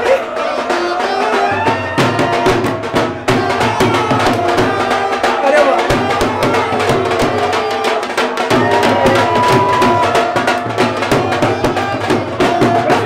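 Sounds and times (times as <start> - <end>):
dhol drum beating: 0.0 - 13.0
voices singing: 0.0 - 13.0.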